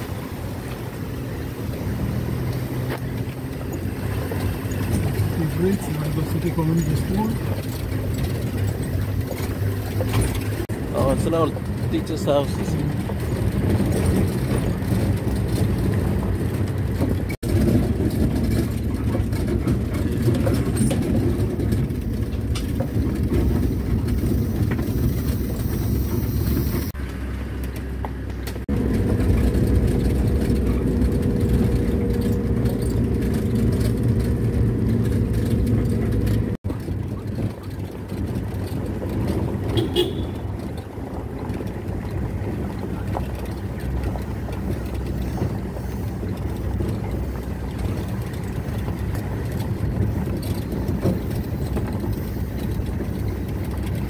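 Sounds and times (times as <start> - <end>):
vehicle driving on gravel: 0.0 - 54.0.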